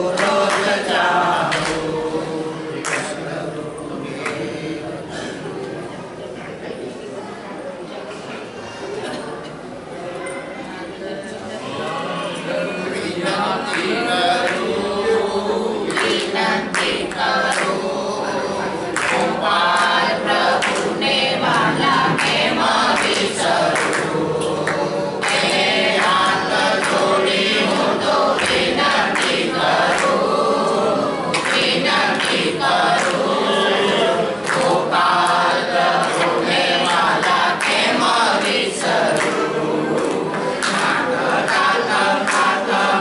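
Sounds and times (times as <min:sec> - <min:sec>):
group singing a chant: 0:00.0 - 0:05.9, 0:11.6 - 0:43.0.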